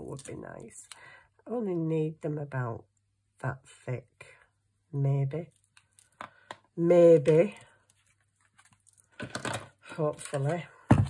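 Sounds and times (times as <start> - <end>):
card rustling and clicking: 7.3 - 10.6.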